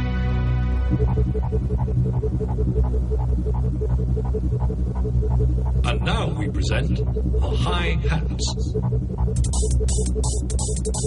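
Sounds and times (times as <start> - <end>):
repeating synthesizer pulse: 0.0 - 11.0
synthesizer bass drone: 0.0 - 11.0.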